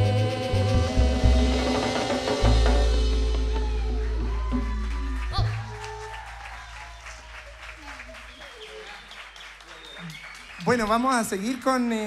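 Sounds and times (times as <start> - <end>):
band's low note: 0.0 - 5.8
audience applauding: 3.4 - 12.0.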